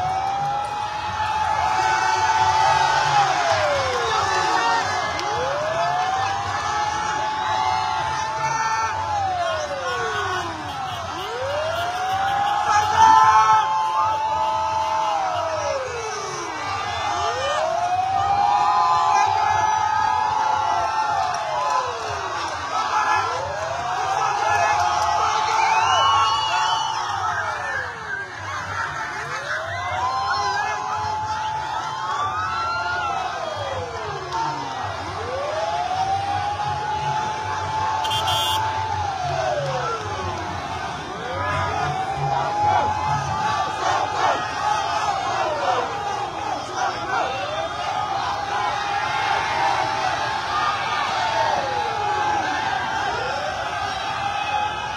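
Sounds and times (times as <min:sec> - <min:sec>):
crowd shouting and cheering: 0:00.0 - 0:54.9
vehicle siren wailing: 0:00.0 - 0:54.9.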